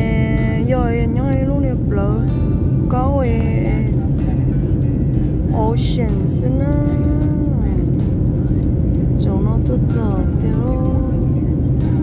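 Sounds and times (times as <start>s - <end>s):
person singing over music: 0.0s - 8.0s, 9.0s - 12.0s
airliner cabin rumble: 0.0s - 12.0s.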